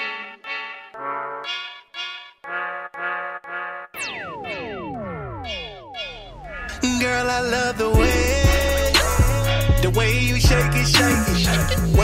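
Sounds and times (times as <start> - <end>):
brass-like chord stabs: 0.0 - 4.5
pitches sweeping down: 4.0 - 7.9.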